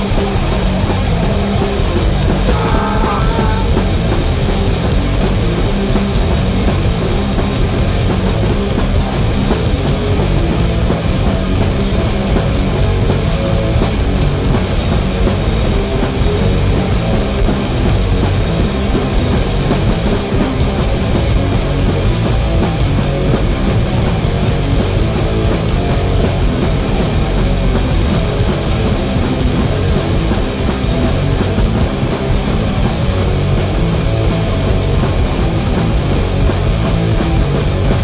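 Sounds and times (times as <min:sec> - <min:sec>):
distorted electric guitars: 0:00.0 - 0:38.0
drum kit: 0:00.0 - 0:38.0.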